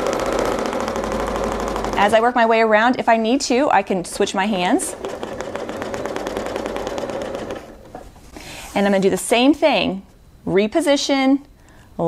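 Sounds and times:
sewing machine stitching: 0.0s - 2.2s, 4.5s - 8.0s.

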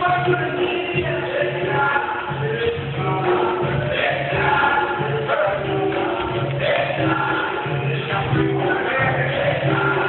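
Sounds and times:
group singing in chorus: 0.0s - 10.0s.

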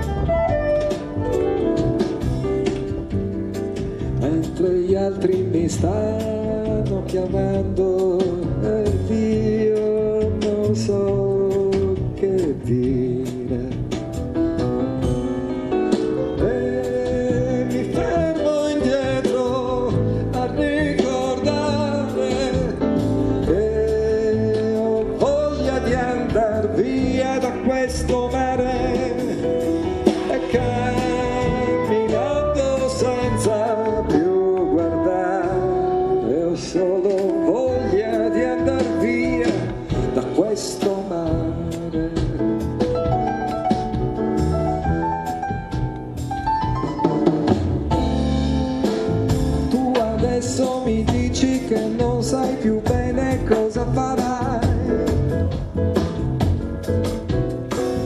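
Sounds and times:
grand piano: 0.0s - 58.0s
man singing: 4.0s - 14.2s, 16.1s - 43.1s, 47.9s - 56.0s.

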